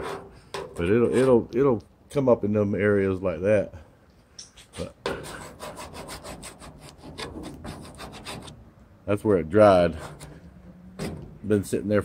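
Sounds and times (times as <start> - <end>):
metal scraper scraping steel panel: 0.0 - 1.4, 5.0 - 8.6, 9.7 - 11.6.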